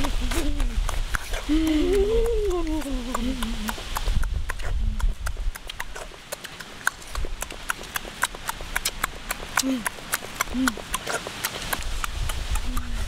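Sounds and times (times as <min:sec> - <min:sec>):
person humming: 0:00.0 - 0:03.8, 0:09.6 - 0:11.0, 0:12.6 - 0:13.0
mouth chewing crunchy food: 0:00.0 - 0:13.0.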